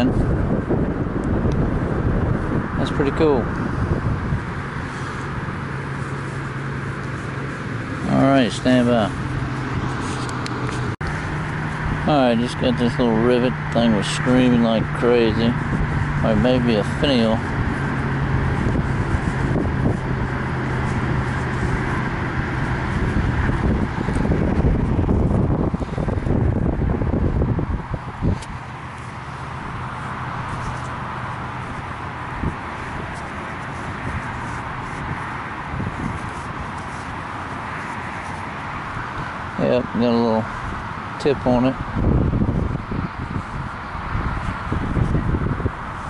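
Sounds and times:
low engine-like hum: 0:00.0 - 0:46.0
wind rumbling on microphone: 0:00.0 - 0:46.0
person speaking: 0:07.0 - 0:10.6, 0:12.0 - 0:17.6, 0:39.5 - 0:41.8.

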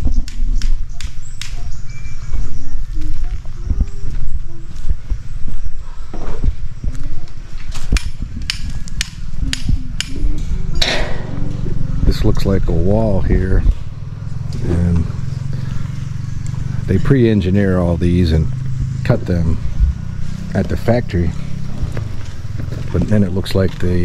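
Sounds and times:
microphone handling rumble: 0:01.7 - 0:24.0.

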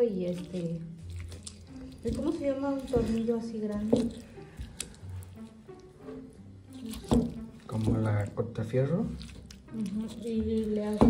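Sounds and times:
faint background music: 0:00.0 - 0:11.0
pestle mashing wet food: 0:00.0 - 0:11.0.

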